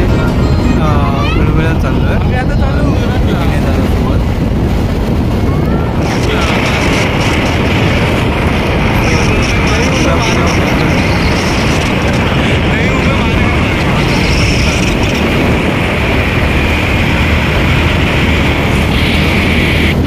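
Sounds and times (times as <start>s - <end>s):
road noise: 0.0s - 20.0s
steady low hum: 0.0s - 20.0s
wind rush on microphone: 0.0s - 20.0s.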